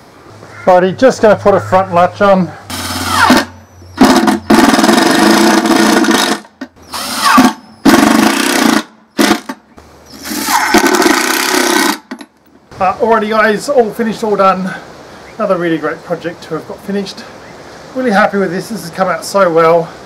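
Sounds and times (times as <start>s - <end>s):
cordless drill driving screws: 5.7s - 7.6s.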